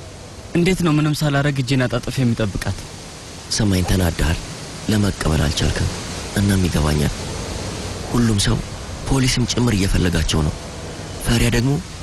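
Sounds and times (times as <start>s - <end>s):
background hiss: 0.0s - 12.0s
man speaking: 0.6s - 2.8s, 3.5s - 7.2s, 8.1s - 10.6s.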